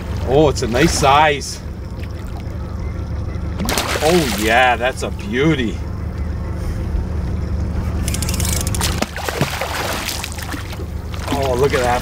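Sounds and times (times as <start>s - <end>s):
steady low rumble: 0.0s - 12.0s
fish splashing in water: 3.6s - 4.7s, 8.3s - 12.0s.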